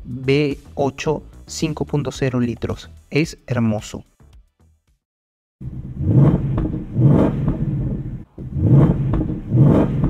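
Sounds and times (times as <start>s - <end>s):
car engine revving: 5.6s - 10.0s.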